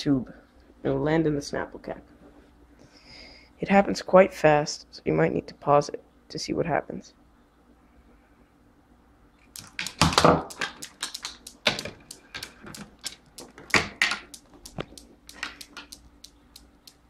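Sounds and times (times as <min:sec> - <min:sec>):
balls rattling along skewers: 0:09.5 - 0:17.0
steel balls clicking and knocking: 0:09.5 - 0:17.0.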